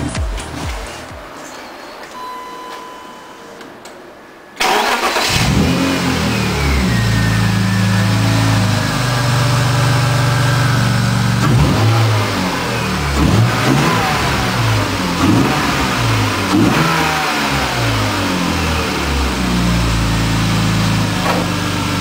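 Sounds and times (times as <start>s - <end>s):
car engine starting and idling: 2.2s - 22.0s
engine revving: 4.6s - 22.0s.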